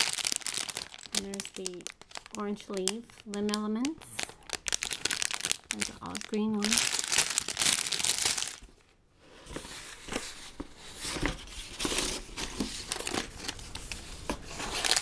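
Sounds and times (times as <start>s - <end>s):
plastic bag crinkling: 0.0s - 8.9s, 11.8s - 15.0s.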